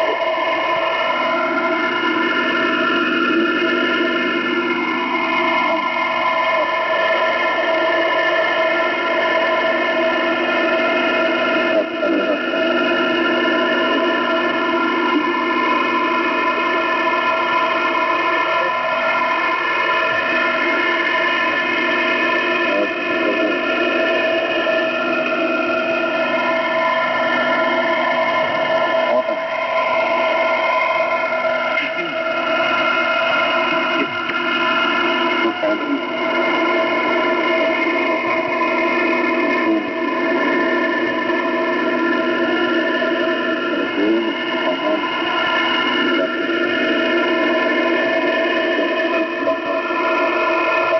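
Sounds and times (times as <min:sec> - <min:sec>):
distorted voice-like sounds: 0:00.0 - 0:30.6, 0:31.7 - 0:50.9
radio hiss: 0:00.0 - 0:50.9.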